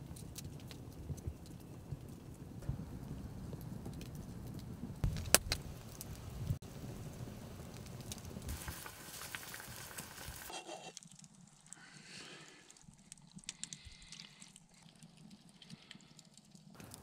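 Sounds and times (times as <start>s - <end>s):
campfire crackling and popping: 0.0s - 17.0s.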